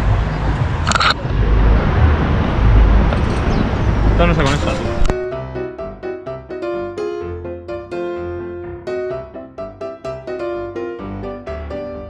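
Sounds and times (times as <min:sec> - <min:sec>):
wind buffeting microphone: 0:00.0 - 0:05.2.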